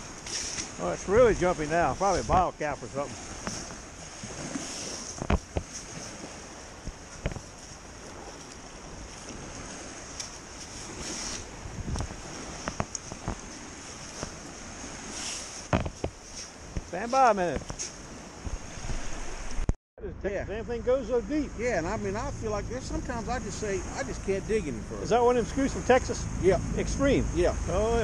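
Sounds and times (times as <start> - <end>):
surf washing: 0.0 - 19.7, 20.4 - 28.0
wind buffeting microphone: 0.0 - 19.7
metal scoop digging wet sand: 0.2 - 3.7, 10.1 - 11.5, 15.0 - 18.0.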